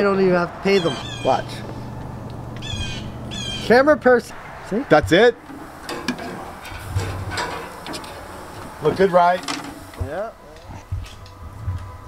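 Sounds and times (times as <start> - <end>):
steady grill hiss: 0.0 - 11.6
metal tongs clicking on grill grate: 5.4 - 8.3.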